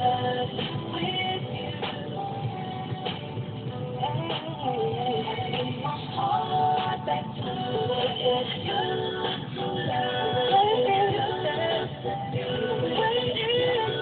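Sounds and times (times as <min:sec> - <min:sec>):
song on car stereo: 0:00.0 - 0:14.0.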